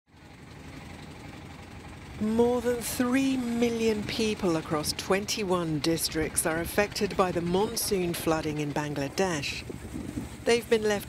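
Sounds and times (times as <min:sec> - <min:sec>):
boat engine rumbling: 0:00.1 - 0:11.0.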